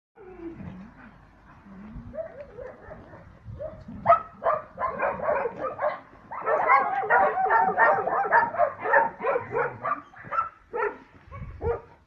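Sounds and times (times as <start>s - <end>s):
wolf whining and yipping: 0.2s - 1.2s, 2.1s - 10.5s.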